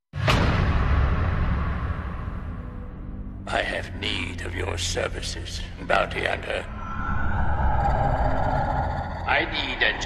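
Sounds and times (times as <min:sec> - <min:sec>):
sci-fi drone with low rumble: 0:04.4 - 0:10.0.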